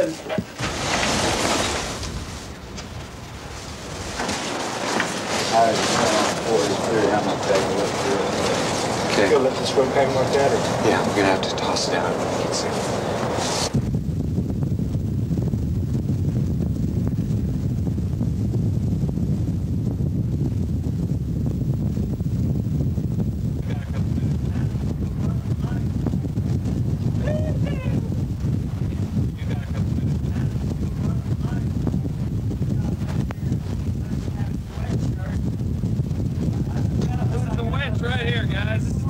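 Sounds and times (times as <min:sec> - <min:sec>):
wind buffeting microphone: 0:00.0 - 0:39.0.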